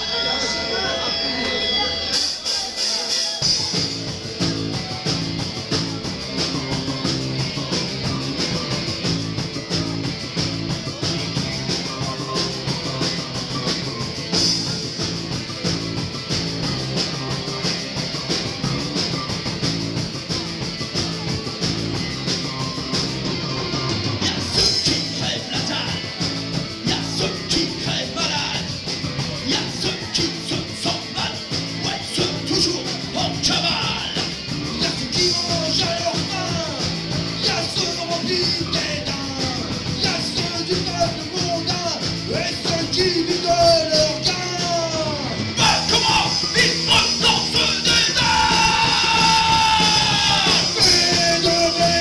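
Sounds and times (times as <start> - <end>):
punk rock band playing: 0.0 - 52.0.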